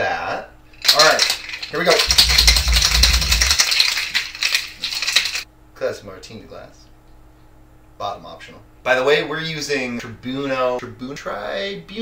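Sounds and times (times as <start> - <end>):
cocktail shaker rattling: 1.0 - 5.4
low rumble: 2.0 - 3.7.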